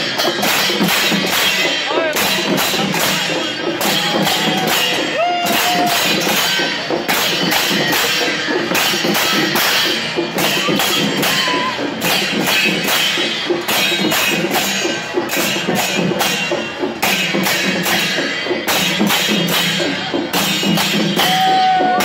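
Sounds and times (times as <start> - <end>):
cymbals clashing: 0.0 - 22.0
drum band playing: 0.0 - 22.0.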